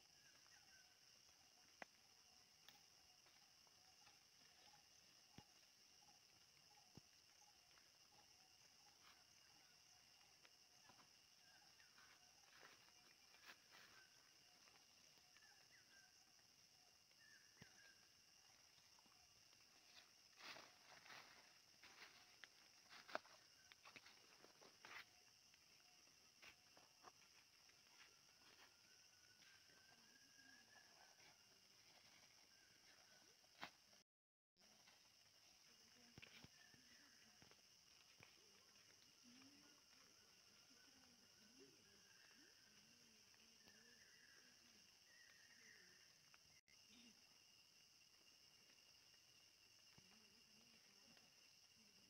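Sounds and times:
footsteps in forest undergrowth: 19.4s - 25.6s.

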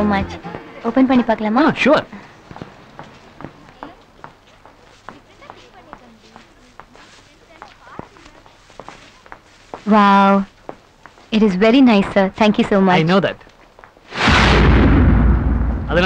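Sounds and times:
faint crowd chatter: 0.0s - 11.0s.

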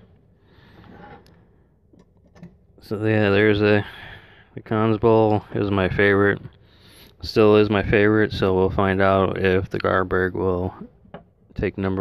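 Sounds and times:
man talking: 2.8s - 6.6s, 7.2s - 12.0s.

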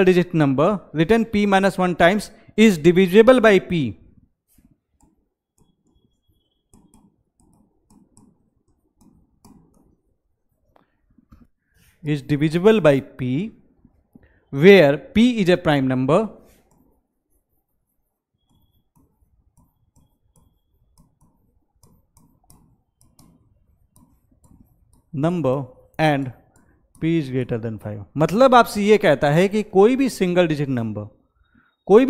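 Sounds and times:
pen tapping and scratching on screen: 4.1s - 12.0s, 16.4s - 28.7s
chalk writing on board: 4.5s - 10.8s, 16.4s - 25.2s.

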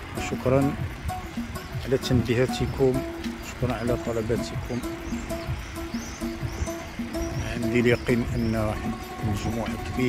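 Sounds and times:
gentle background melody: 0.0s - 10.0s.

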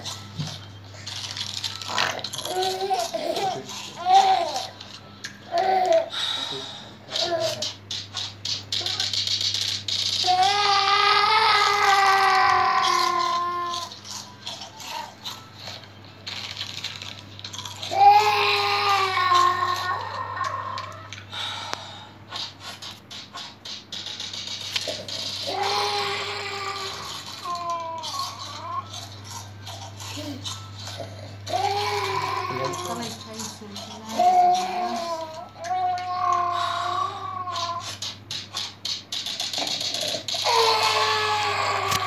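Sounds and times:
baby crying wail: 2.5s - 4.8s, 10.2s - 13.9s, 17.9s - 21.1s, 25.4s - 29.0s, 31.0s - 33.2s, 34.0s - 38.0s, 40.4s - 42.0s
rapid rattling shakes: 22.3s - 25.8s.

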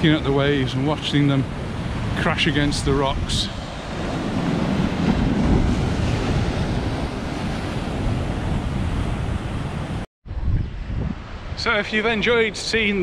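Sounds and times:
sea waves breaking on rocky shore: 0.0s - 10.0s.

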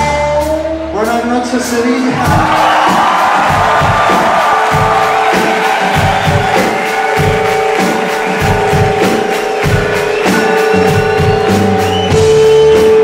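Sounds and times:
live rock band playing: 0.0s - 13.0s
crowd cheering: 2.0s - 13.0s
kick drum beat: 2.3s - 13.0s.

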